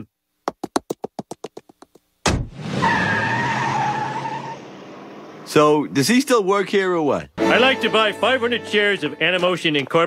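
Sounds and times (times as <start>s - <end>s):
cartoon footstep taps: 0.4s - 2.5s
car engine: 2.3s - 6.1s.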